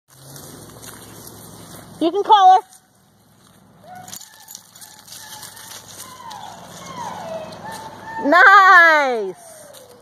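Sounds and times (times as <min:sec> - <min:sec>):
light crackling and rustle: 0:00.1 - 0:08.1, 0:09.5 - 0:10.0.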